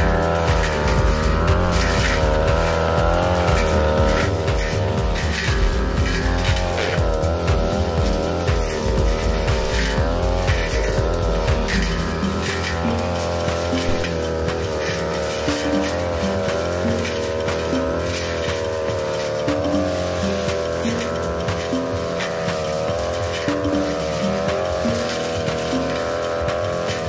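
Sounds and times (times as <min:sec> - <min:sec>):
brush cutter engine running: 0:00.0 - 0:27.0.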